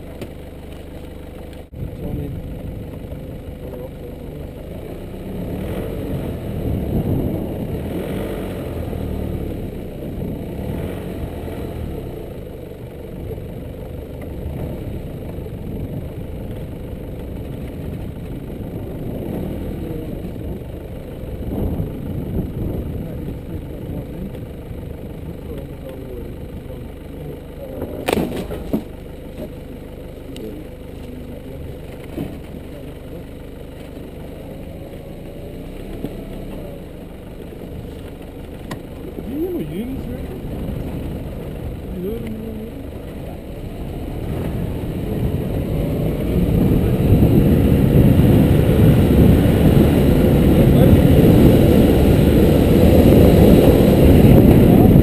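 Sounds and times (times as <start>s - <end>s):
vehicle engine running slowly: 0.0s - 55.0s.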